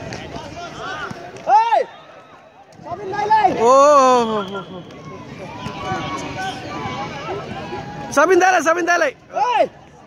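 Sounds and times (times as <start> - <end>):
people shouting: 0.5 - 8.3.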